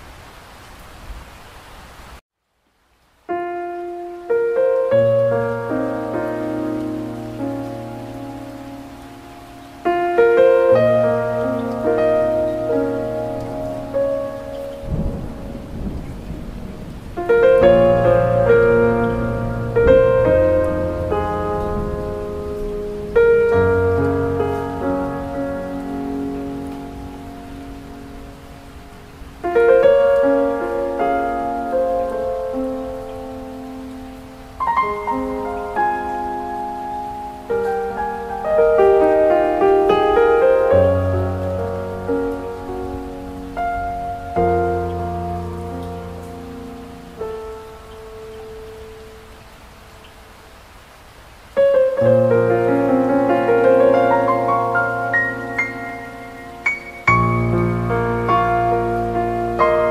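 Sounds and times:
steady rain-like hiss: 0:00.0 - 0:59.9
soft piano music: 0:03.2 - 0:59.9.

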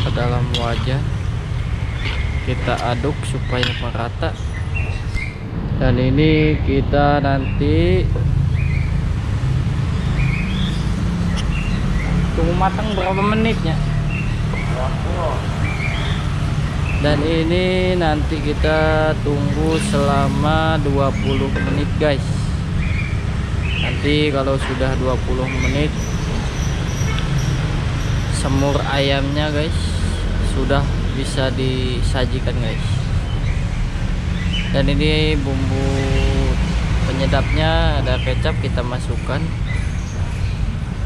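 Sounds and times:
low rumbling hum: 0:00.0 - 0:41.0.

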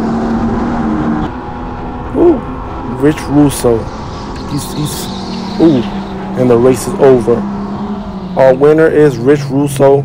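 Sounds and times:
go-kart motor hum: 0:00.0 - 0:10.0.

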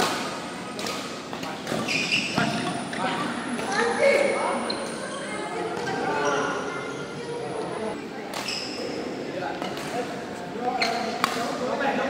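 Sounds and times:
voices echoing in hall: 0:00.0 - 0:12.0
shoe squeaks: 0:01.7 - 0:09.0, 0:10.7 - 0:11.2.

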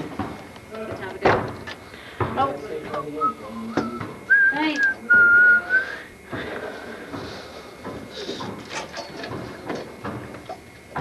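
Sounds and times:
person whistling high note: 0:03.2 - 0:06.0.

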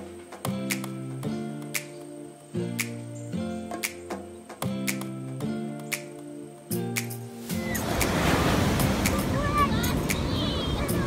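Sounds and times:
background music: 0:00.0 - 0:11.0
ocean surf breaking on shore: 0:07.4 - 0:11.0.

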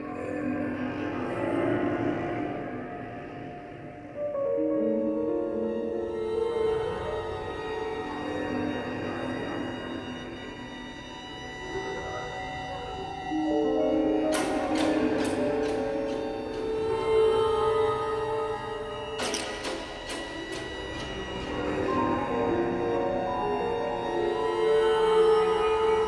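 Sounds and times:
tense orchestral horror score: 0:00.0 - 0:26.0.

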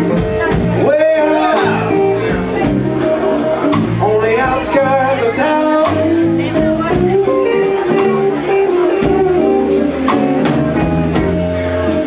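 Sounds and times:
blues band playing: 0:00.0 - 0:12.0.

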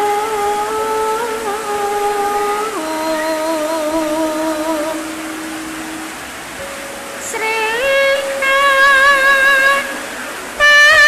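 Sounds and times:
women singing long notes: 0:00.0 - 0:11.0.

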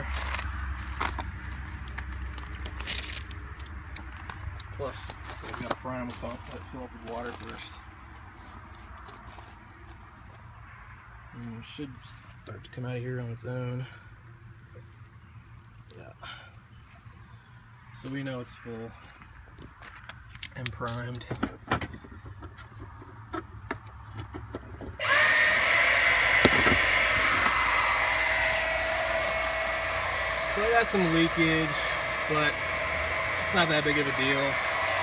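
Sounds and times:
footsteps on gravel and leaves: 0:00.0 - 0:10.6, 0:18.8 - 0:21.2
water trickling onto grass: 0:14.1 - 0:17.2
steady low hum: 0:26.1 - 0:35.0.

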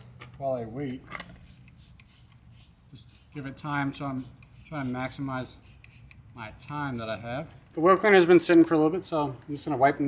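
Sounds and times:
spray bottle spritzes: 0:01.4 - 0:07.1.

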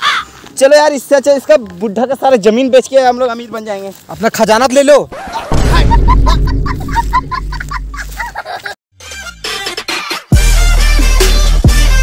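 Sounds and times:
deep music bass: 0:05.6 - 0:08.0, 0:10.3 - 0:12.0.

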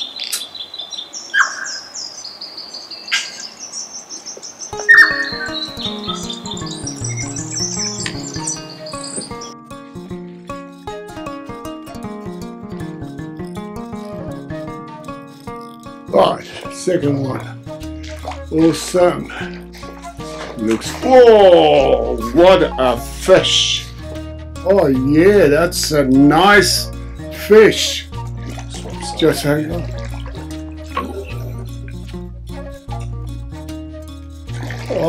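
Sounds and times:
bird whistling and clicking: 0:00.2 - 0:00.6, 0:04.8 - 0:09.5
background music with steady beat: 0:04.8 - 0:35.0.

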